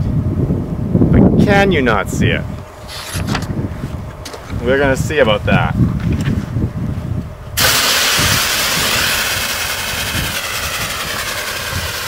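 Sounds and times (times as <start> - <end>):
liquid oxygen venting hiss: 7.6 - 12.0.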